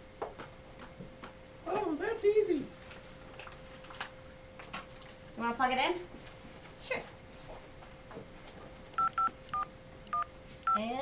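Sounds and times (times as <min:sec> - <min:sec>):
touch-tone keypad beeps: 0:09.0 - 0:10.8.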